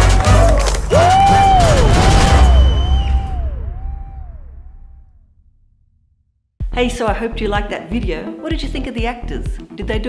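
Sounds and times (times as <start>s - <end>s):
trailer closing hit: 0.0s - 6.3s.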